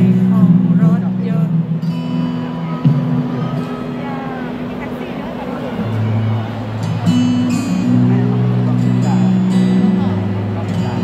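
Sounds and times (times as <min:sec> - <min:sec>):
sustained bass notes: 0:00.0 - 0:11.0.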